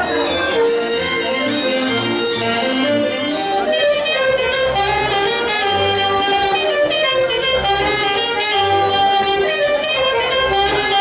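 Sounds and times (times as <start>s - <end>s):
accordion: 0.0s - 11.0s
saxophone: 0.0s - 11.0s.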